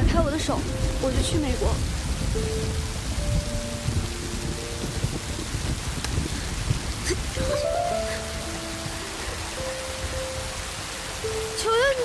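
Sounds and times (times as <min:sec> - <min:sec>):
rain-like hiss: 0:00.0 - 0:12.0.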